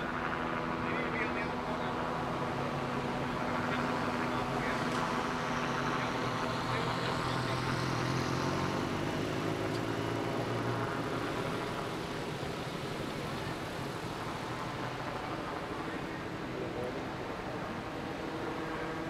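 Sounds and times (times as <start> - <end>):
street traffic: 0.0 - 19.0
vehicle engine humming: 1.4 - 19.0.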